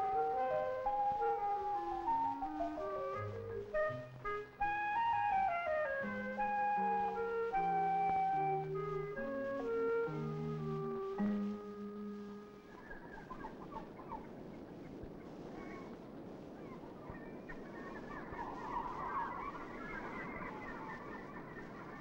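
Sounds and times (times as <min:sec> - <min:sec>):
organ note: 0:00.0 - 0:12.9
seabirds calling: 0:00.0 - 0:22.0.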